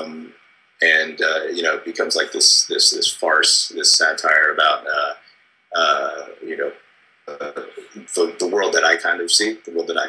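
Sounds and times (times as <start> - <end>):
man making hesitant uhh: 0.0 - 5.1, 5.8 - 6.7, 7.3 - 8.5.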